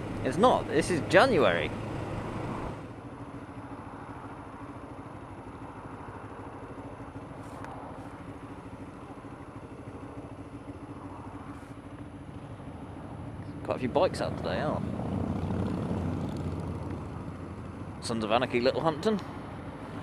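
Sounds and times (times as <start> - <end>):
motorcycle engines idling: 0.0 - 20.0.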